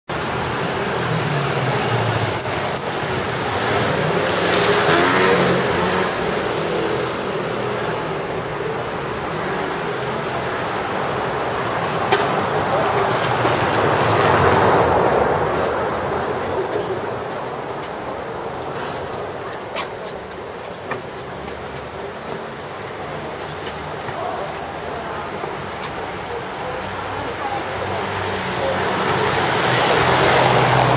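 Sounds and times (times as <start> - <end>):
street noise: 0.0 - 30.9.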